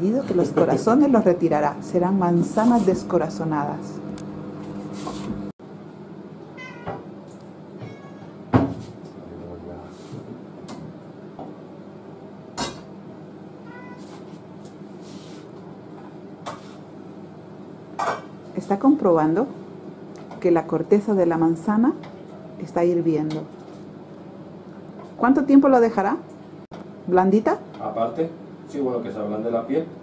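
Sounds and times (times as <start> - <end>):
steady low hum: 0.0 - 13.7.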